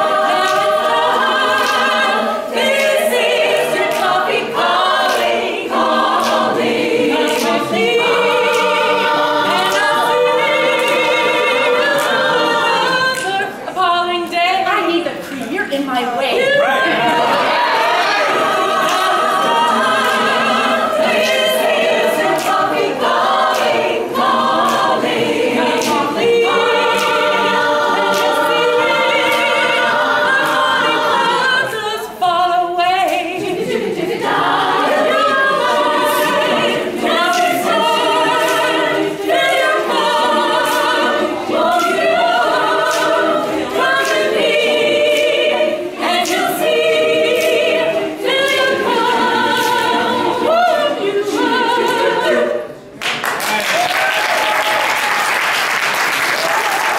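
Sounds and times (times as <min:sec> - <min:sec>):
women's choir singing a cappella: 0:00.0 - 0:53.3.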